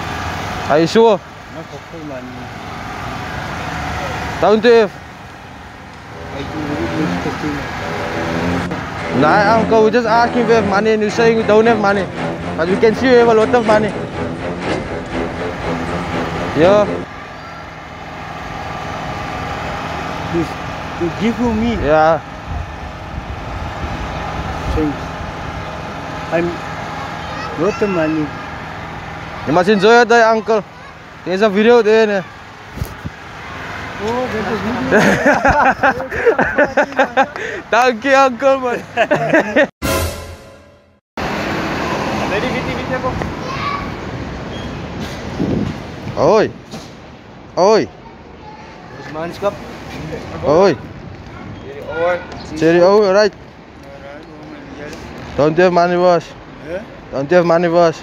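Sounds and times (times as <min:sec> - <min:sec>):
street traffic hum: 0:00.0 - 0:58.0.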